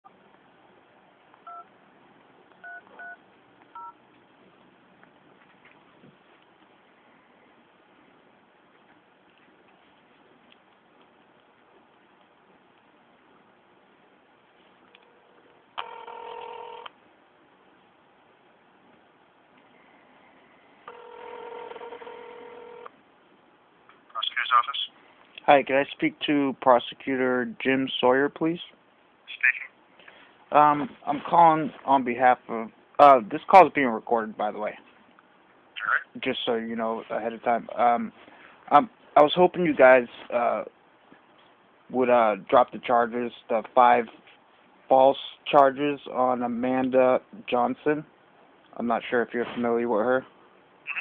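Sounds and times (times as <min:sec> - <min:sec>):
telephone ringback tone: 0:02.6 - 0:03.2, 0:15.8 - 0:16.9, 0:20.9 - 0:22.9
touch-tone keypad beeps: 0:02.6 - 0:03.2
faint phone-line hiss: 0:11.3 - 0:17.0, 0:19.5 - 0:23.4.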